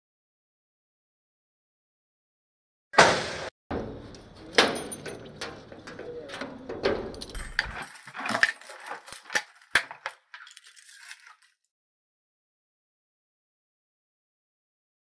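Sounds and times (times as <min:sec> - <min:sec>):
loud metal clack: 0:03.0 - 0:07.8
keys jangling: 0:04.2 - 0:11.5.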